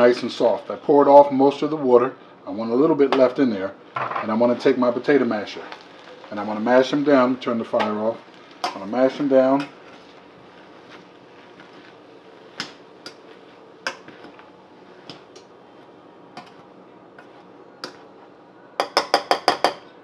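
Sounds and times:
potato masher knocking on saucepan: 18.8 - 19.8.

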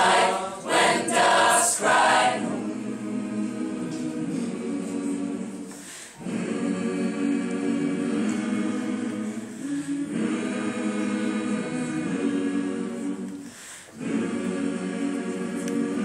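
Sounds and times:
mixed choir singing a cappella: 0.0 - 16.0.

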